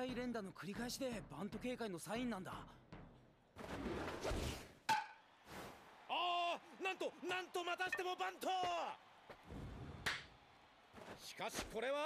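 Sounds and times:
bat hitting ball: 0:04.9 - 0:05.2.

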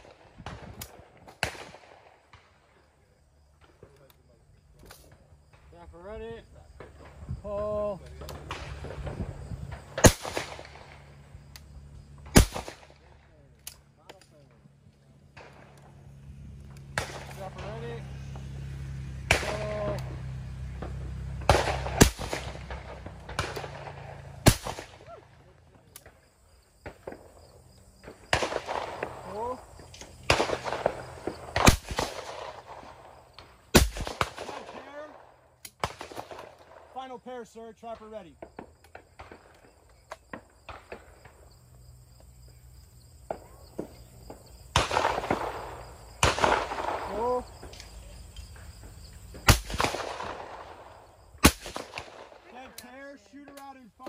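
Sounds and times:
shotgun shots: 0:00.0 - 0:02.6, 0:08.2 - 0:11.2, 0:12.2 - 0:13.3, 0:16.9 - 0:18.0, 0:19.2 - 0:20.0, 0:21.3 - 0:25.1, 0:28.0 - 0:37.1, 0:44.7 - 0:47.5, 0:49.4 - 0:52.7.

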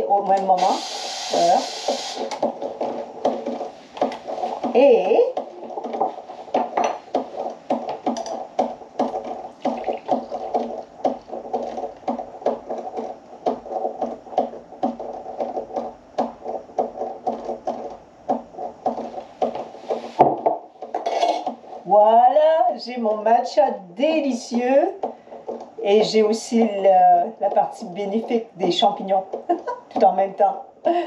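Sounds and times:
espresso machine pulsing hum: 0:00.4 - 0:02.5.

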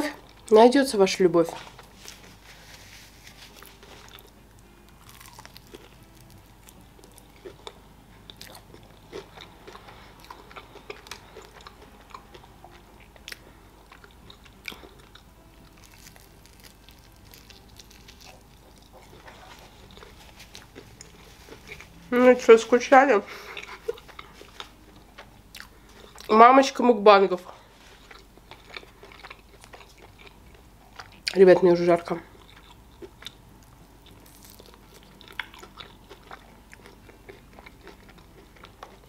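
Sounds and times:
person chewing crispy chicken: 0:01.8 - 0:21.9, 0:23.3 - 0:26.3, 0:27.8 - 0:31.4, 0:32.3 - 0:39.0.

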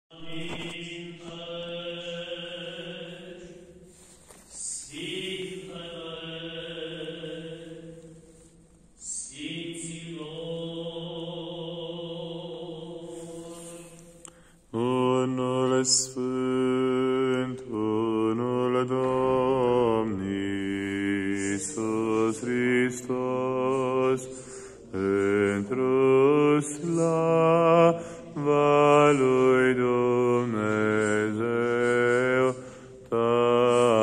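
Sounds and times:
church chant in long held notes: 0:00.1 - 0:34.0.

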